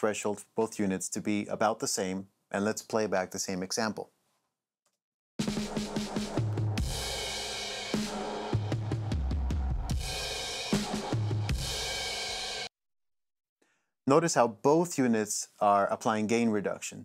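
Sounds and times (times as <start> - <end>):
drum kit with bass notes: 5.4 - 12.7.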